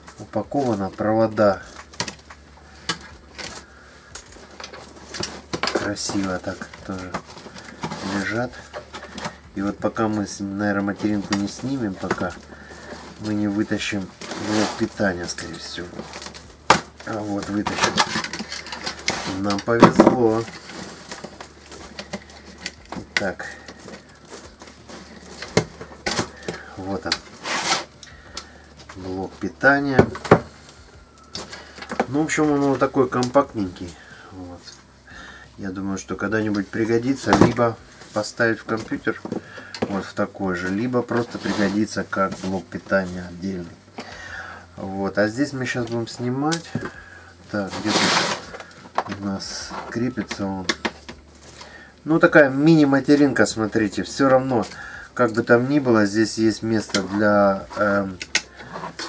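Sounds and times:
cables rustling in metal case: 0:00.0 - 0:59.0.

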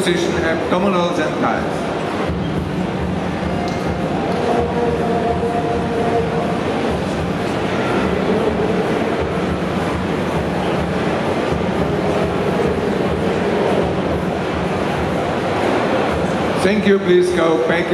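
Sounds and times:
crowd din in large hall: 0:00.0 - 0:17.9.

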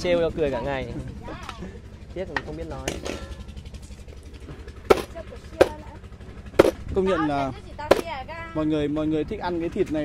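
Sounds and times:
low engine hum: 0:00.0 - 0:10.0
cleaver chopping on cutting board: 0:04.9 - 0:05.7, 0:06.6 - 0:06.8.

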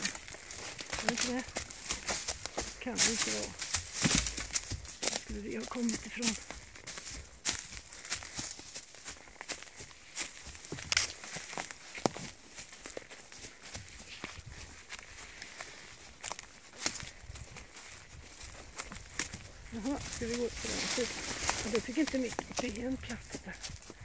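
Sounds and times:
twigs snapping under hooves: 0:00.0 - 0:24.0
branches brushing past: 0:19.2 - 0:23.2.

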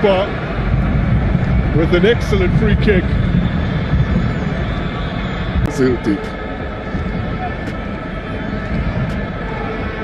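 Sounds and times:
stadium crowd noise: 0:00.0 - 0:10.0.

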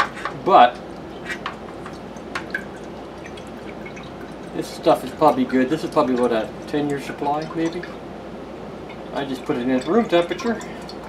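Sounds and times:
liquid trickling into dish: 0:00.0 - 0:11.0
light drips: 0:00.5 - 0:08.0, 0:08.8 - 0:11.0.

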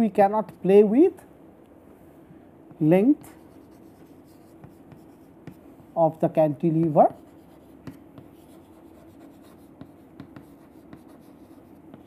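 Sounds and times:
chalk scratching on chalkboard: 0:03.2 - 0:05.6, 0:07.1 - 0:12.0.

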